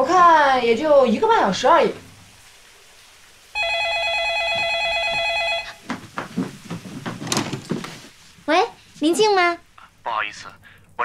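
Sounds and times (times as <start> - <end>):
telephone ringing electronic warble: 3.6 - 5.8.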